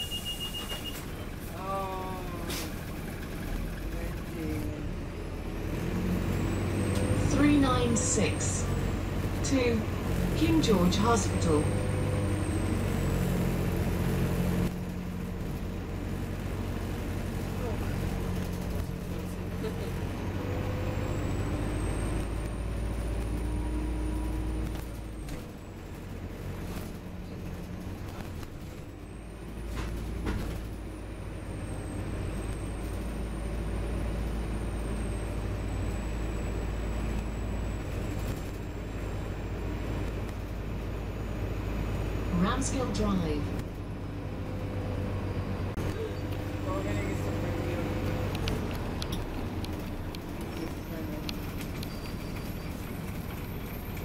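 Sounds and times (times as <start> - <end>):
bus engine rumble: 0.0 - 54.0
road noise: 0.0 - 54.0.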